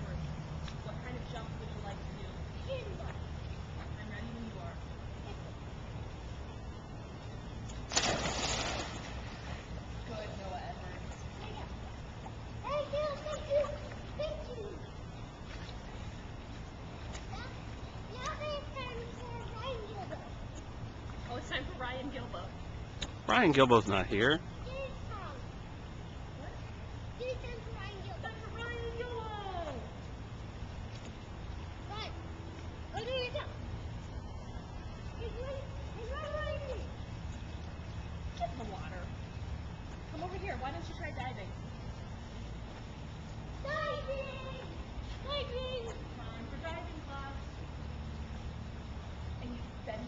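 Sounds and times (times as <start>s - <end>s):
child splashing into pool: 7.9s - 9.7s
churning water: 7.9s - 10.3s.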